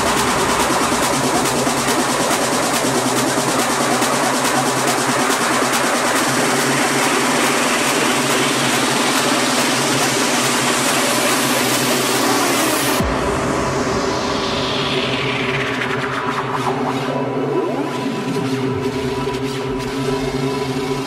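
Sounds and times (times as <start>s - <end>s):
deep bass: 0.0s - 21.0s
techno music: 0.0s - 21.0s
falling pitch sweep: 11.4s - 20.6s
hissing noise build: 12.1s - 19.0s.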